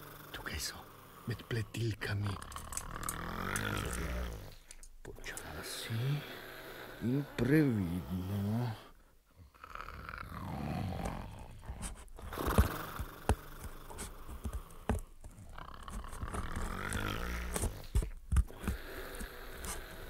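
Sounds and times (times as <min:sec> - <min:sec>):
wolf snoring: 0:00.0 - 0:20.0
scissors snipping: 0:02.3 - 0:05.5, 0:11.0 - 0:20.0.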